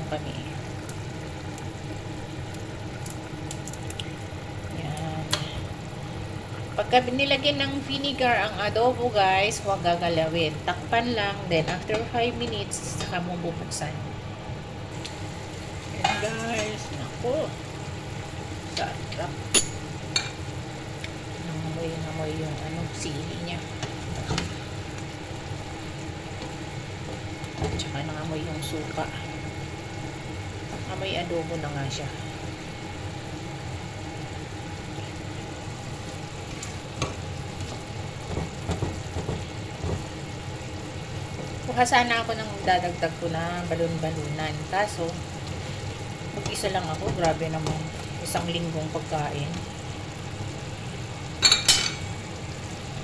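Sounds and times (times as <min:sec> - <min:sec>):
food simmering with bubbling hiss: 0:00.0 - 0:53.0.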